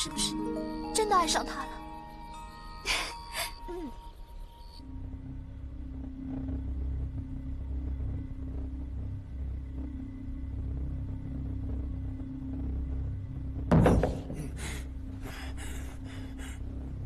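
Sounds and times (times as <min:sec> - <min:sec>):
low rumbling drone: 0:03.7 - 0:17.0.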